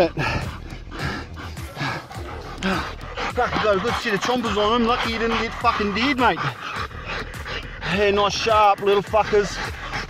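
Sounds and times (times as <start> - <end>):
dog panting: 0.0 - 10.0.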